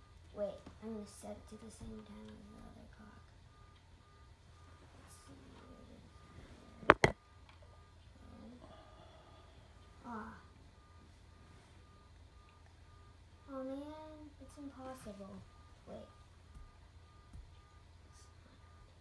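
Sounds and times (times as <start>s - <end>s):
faint high electronic beeps: 1.2s - 19.0s
plastic parts clicking: 6.9s - 7.2s.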